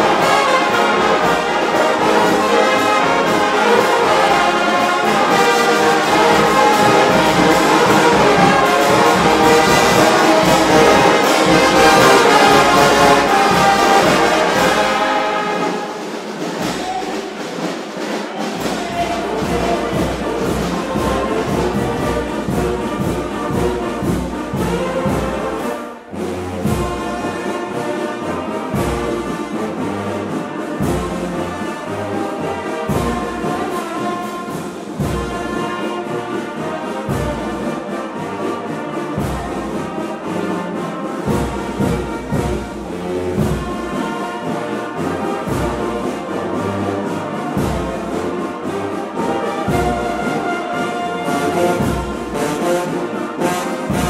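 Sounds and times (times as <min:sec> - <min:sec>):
brass band playing chords: 0:00.0 - 0:54.0.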